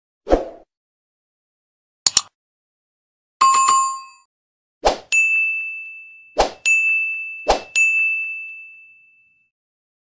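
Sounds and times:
button click: 2.1 - 2.3.

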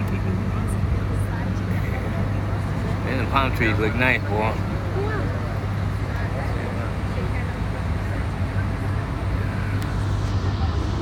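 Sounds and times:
bus engine humming: 0.0 - 11.0
faint voices: 0.0 - 11.0
road and traffic noise: 0.0 - 11.0.

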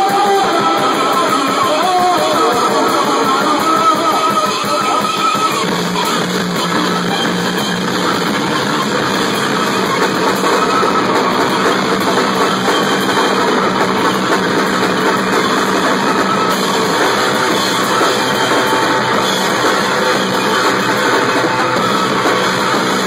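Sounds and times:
distorted droning guitar tone: 0.0 - 23.0
drum kit with cymbals: 0.0 - 23.0.

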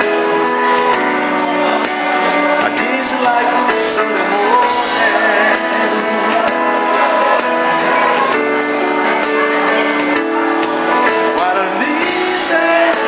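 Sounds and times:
piano and keyboards soul ballad: 0.0 - 13.0.

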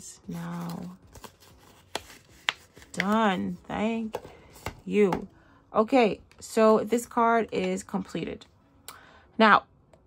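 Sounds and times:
banknotes rustling: 0.2 - 4.8.

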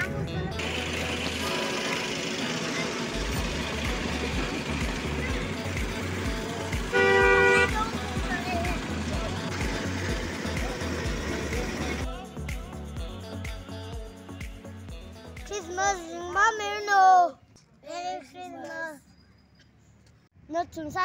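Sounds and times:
background music with steady beat: 0.0 - 16.6
street noise: 0.0 - 21.0
vehicle horn blast: 6.8 - 8.0.

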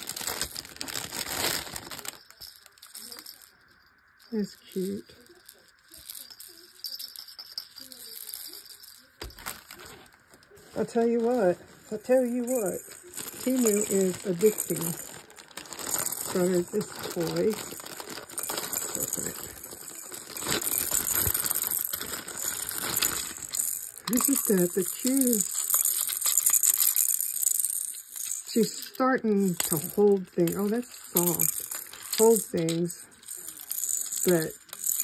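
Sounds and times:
plastic packaging crinkling: 0.0 - 3.6, 4.8 - 35.0
baby rattle shaken: 0.0 - 35.0.

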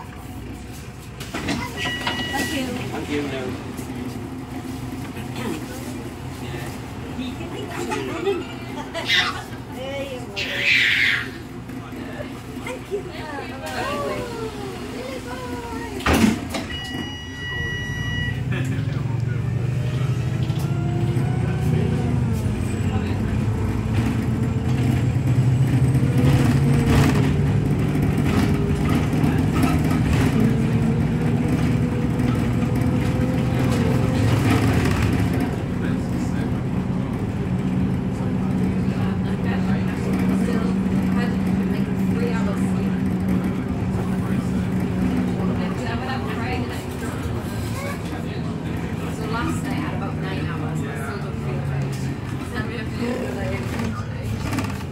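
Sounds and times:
bus engine accelerating: 0.0 - 54.9
bus doors shutting: 1.2 - 5.7, 13.6 - 35.7.

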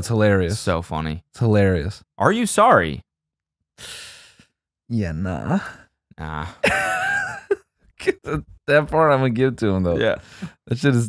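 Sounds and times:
man sighing: 10.2 - 10.6.

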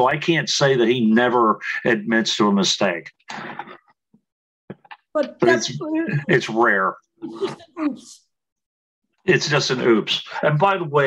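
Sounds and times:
person's short voiced sounds: 5.3 - 7.6.

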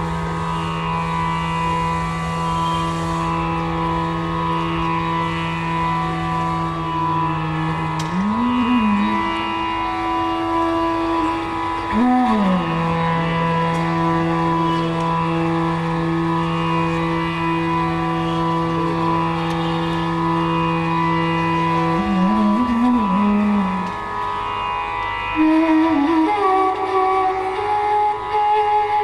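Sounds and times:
bamboo flute playing slowly: 0.0 - 29.0
tanpura drone: 0.0 - 29.0.

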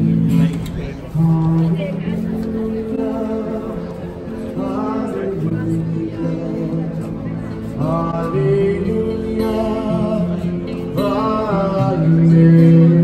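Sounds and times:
guitar: 0.0 - 13.0
person singing through amplifier: 0.0 - 13.0.

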